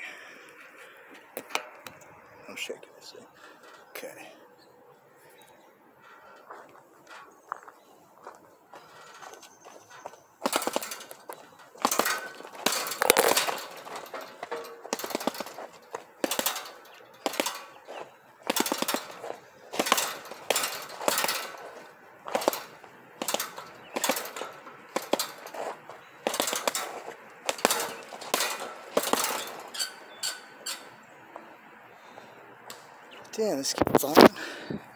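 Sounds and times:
metal frame knocking and rattling: 0:03.2 - 0:04.2, 0:06.0 - 0:31.7.

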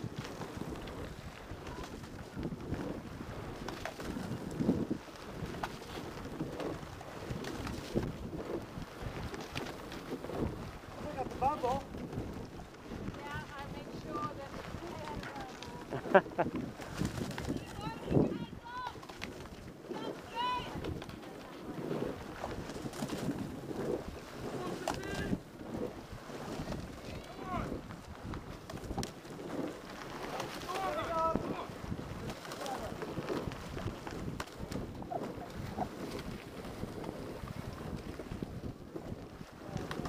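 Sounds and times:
wind buffeting microphone: 0:00.0 - 0:40.0
tyres rolling over gravel: 0:26.6 - 0:34.6.

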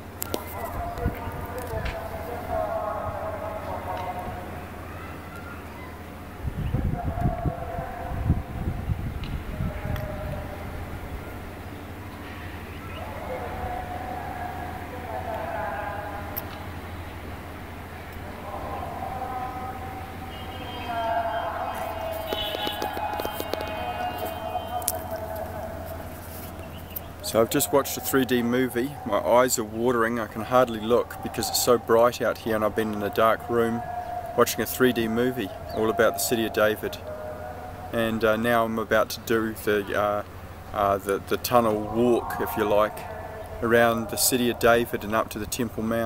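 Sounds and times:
faint distant voices: 0:00.0 - 0:46.0
wind buffeting microphone: 0:06.2 - 0:11.7
long steady held note: 0:09.4 - 0:45.4.

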